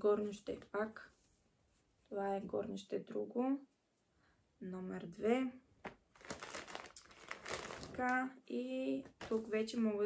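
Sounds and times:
paper bag crinkling: 0:06.1 - 0:08.2.

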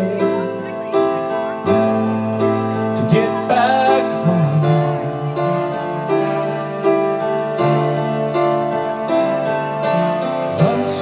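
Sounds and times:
live band playing slow lullaby: 0:00.0 - 0:11.0.

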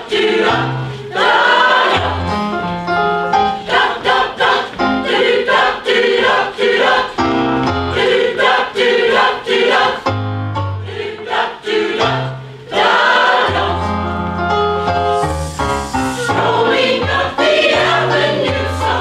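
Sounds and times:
mixed choir singing: 0:00.0 - 0:10.1, 0:10.8 - 0:19.0.

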